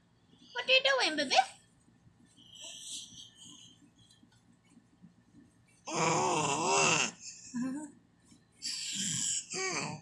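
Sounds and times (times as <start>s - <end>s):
baby vocalizing: 5.9s - 7.4s, 8.6s - 10.0s.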